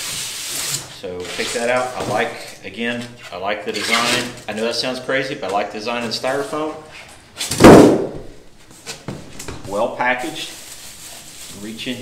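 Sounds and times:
styrofoam thud on wooden floor: 7.5 - 8.3.

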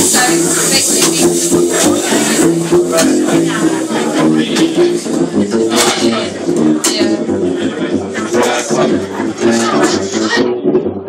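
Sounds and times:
jazz group playing: 0.0 - 11.0
plucked double bass: 0.0 - 11.0.

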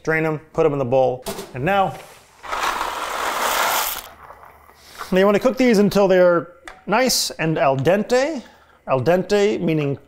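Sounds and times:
dry pasta pouring into pot: 2.4 - 4.2.

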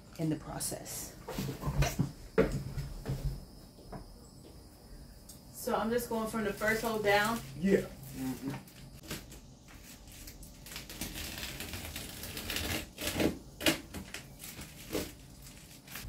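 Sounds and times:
insulation film crinkling: 6.4 - 16.0.

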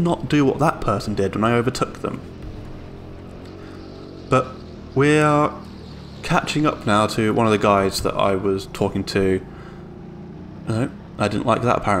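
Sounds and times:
go-kart engine running: 0.0 - 12.0.

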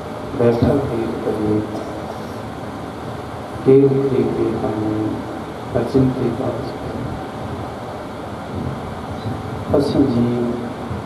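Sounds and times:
air cooler fan whooshing: 0.0 - 11.0.

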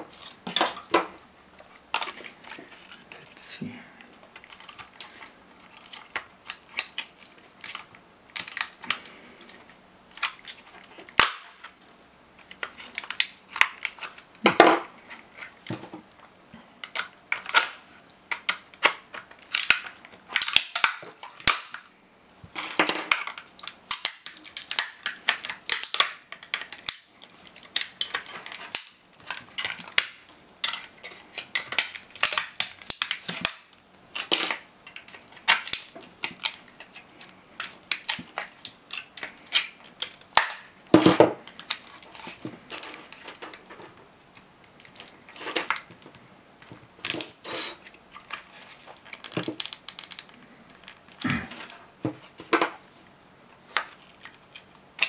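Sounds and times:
hard plastic cracking and snapping: 4.0 - 52.8, 53.6 - 55.0.

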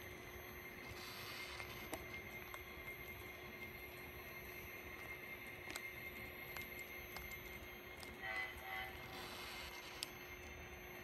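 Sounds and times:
model locomotive horn blasts: 8.2 - 9.3.

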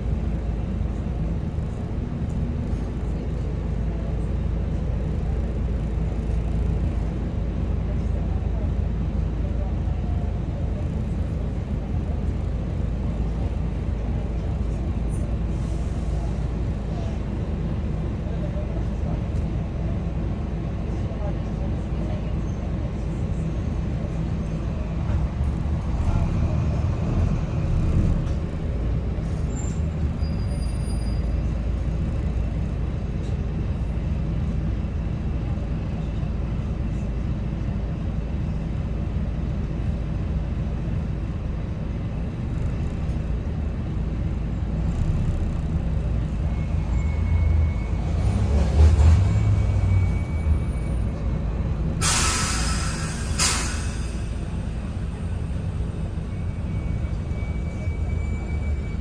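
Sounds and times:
bus diesel engine drone: 0.0 - 59.0.

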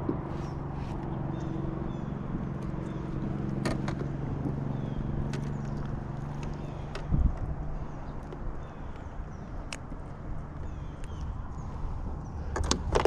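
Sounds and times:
low motor hum: 0.0 - 13.0
sharp clicks and light knocks: 2.5 - 4.6, 5.2 - 11.6, 12.5 - 13.0.

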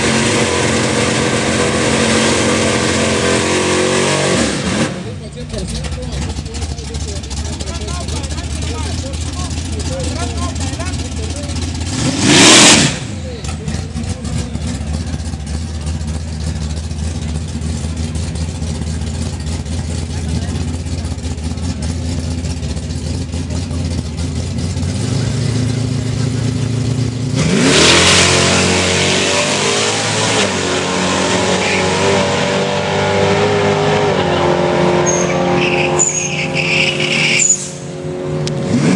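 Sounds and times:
engine at full throttle: 0.0 - 38.9
engine revving: 0.0 - 38.9
truck engine idling: 4.6 - 27.4, 33.9 - 38.7.

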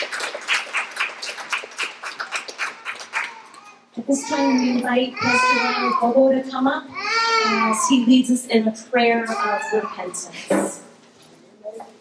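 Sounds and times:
small audience applauding: 0.0 - 3.8.

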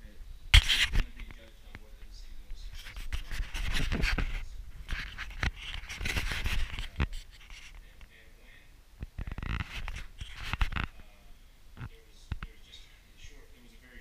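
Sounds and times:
camera handling rustle: 0.6 - 1.5, 2.7 - 7.8, 9.1 - 10.9.

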